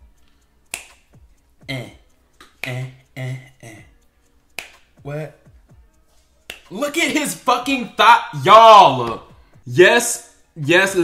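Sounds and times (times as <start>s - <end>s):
finger snap: 0.0s - 1.4s, 2.3s - 3.0s, 4.5s - 5.0s, 6.4s - 6.9s, 9.0s - 9.6s.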